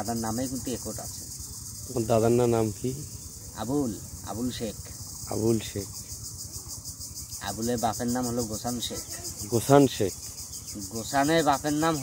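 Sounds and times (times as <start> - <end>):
insects pulsing chirr: 0.0 - 12.0.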